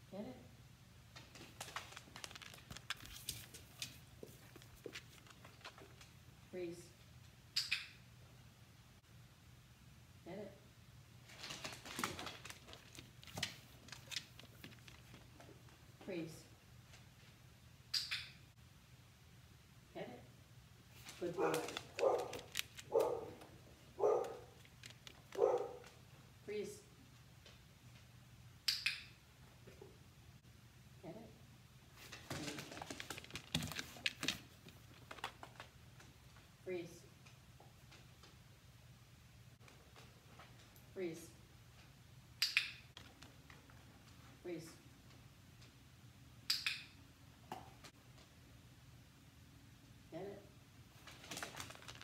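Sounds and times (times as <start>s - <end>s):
dog claws clicking on wooden floor: 1.2s - 6.1s, 11.4s - 15.6s, 21.1s - 26.0s, 32.1s - 35.8s.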